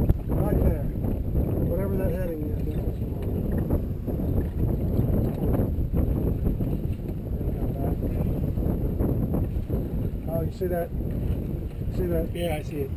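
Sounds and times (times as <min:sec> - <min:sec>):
water rushing along hull: 0:00.0 - 0:12.9
wind noise on microphone: 0:00.0 - 0:12.9.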